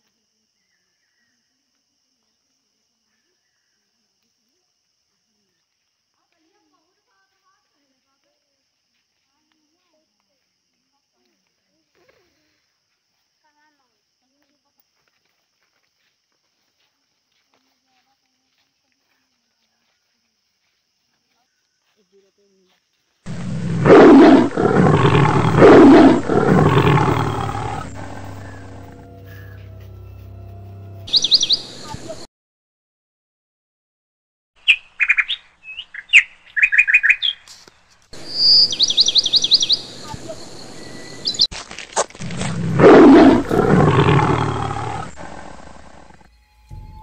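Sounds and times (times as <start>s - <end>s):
big cat roaring: 23.3s - 29.3s, 42.2s - 46.3s.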